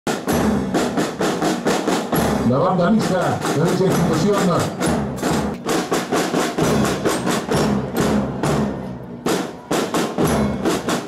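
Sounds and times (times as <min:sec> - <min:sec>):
snare and bass drums march beat: 0:00.1 - 0:11.0.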